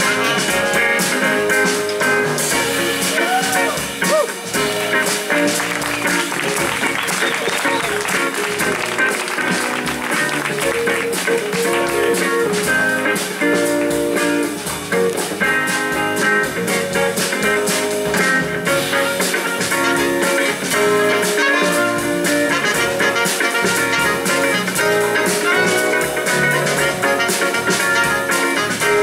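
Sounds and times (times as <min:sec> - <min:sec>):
electric guitar: 0:00.0 - 0:29.0
jazz-funk band playing: 0:00.0 - 0:29.0
audience applause: 0:03.0 - 0:29.0.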